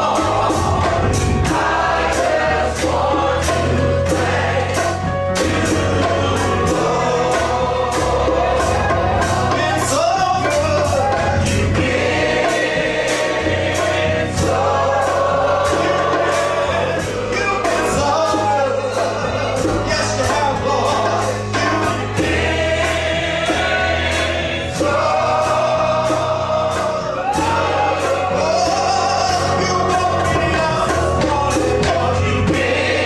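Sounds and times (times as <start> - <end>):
group singing gospel: 0.0 - 33.0
instrumental backing with bass: 0.0 - 33.0.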